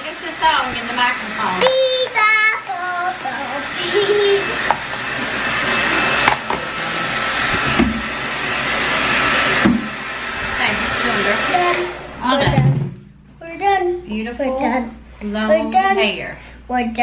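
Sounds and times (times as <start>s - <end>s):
hair dryer running: 0.0s - 12.6s
girl singing: 1.6s - 4.5s.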